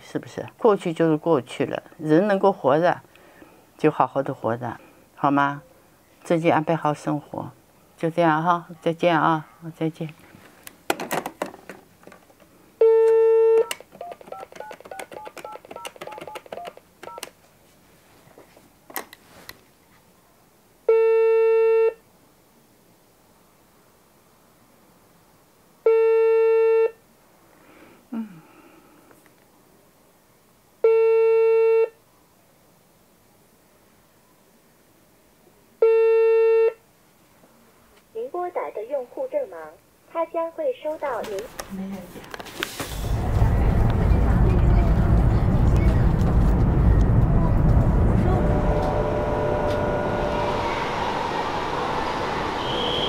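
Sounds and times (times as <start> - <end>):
dial tone: 12.8 - 17.2
keypad tones: 12.9 - 17.3.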